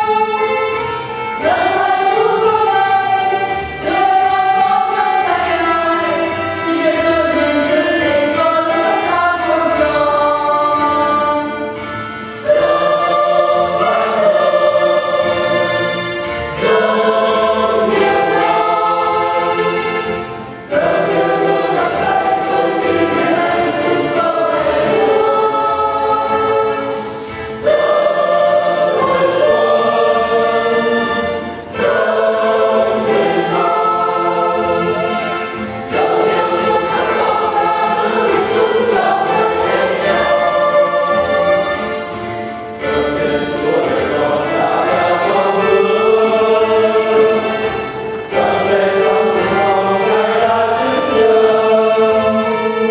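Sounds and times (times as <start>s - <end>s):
church choir singing a hymn: 0.0s - 52.9s.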